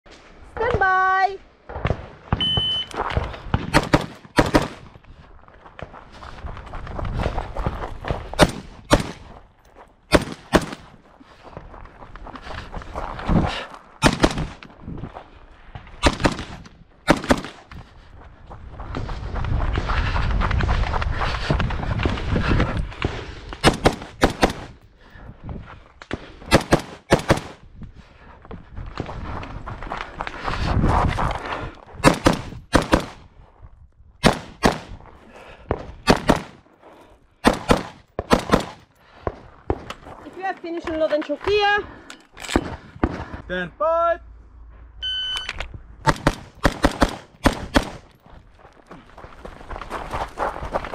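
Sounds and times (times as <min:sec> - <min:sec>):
rifle shots: 0:03.6 - 0:04.8, 0:08.4 - 0:09.3, 0:10.1 - 0:10.9, 0:14.0 - 0:14.6, 0:16.0 - 0:17.6, 0:23.6 - 0:24.8, 0:26.5 - 0:27.6, 0:32.0 - 0:33.2, 0:34.2 - 0:34.9, 0:36.0 - 0:36.6, 0:37.4 - 0:38.8, 0:46.0 - 0:48.1.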